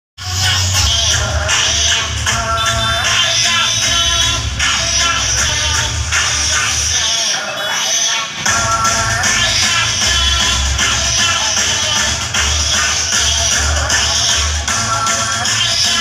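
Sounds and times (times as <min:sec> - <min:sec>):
loud music with heavy bass: 0:00.2 - 0:16.0.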